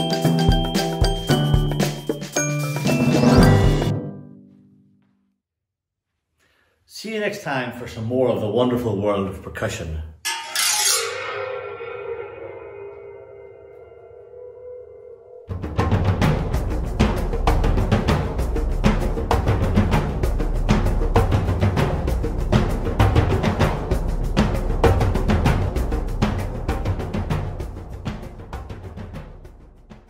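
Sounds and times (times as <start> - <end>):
drum-led percussion music: 0.0 - 3.9, 15.5 - 30.0
cymbal ringing: 10.3 - 15.5.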